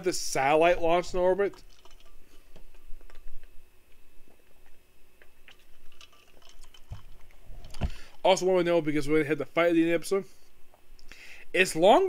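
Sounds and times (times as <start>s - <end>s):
low room hum: 0.0s - 12.0s
person drinking from bottle: 5.2s - 8.2s.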